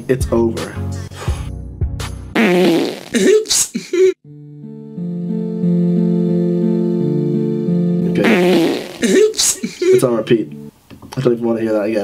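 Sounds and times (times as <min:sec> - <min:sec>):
soft background music: 0:00.0 - 0:02.0, 0:04.2 - 0:08.6, 0:09.9 - 0:12.0
wavering fart sound: 0:02.4 - 0:03.3, 0:08.1 - 0:09.4.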